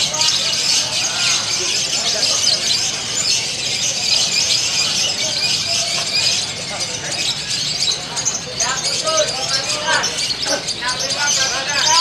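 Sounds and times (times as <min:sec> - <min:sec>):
lovebirds trilling song: 0:00.0 - 0:12.0.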